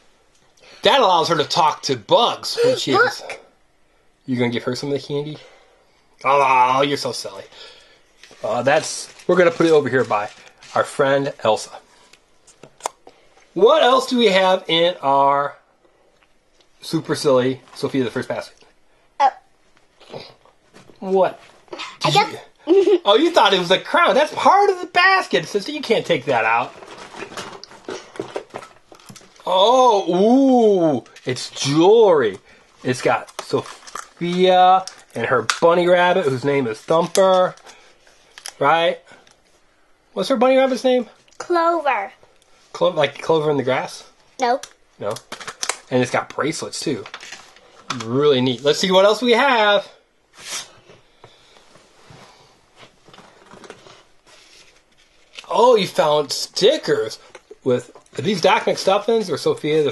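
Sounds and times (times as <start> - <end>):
rustling and crinkling: 8.2 - 12.9, 25.4 - 29.5, 32.3 - 38.6, 45.1 - 48.8, 50.3 - 56.1.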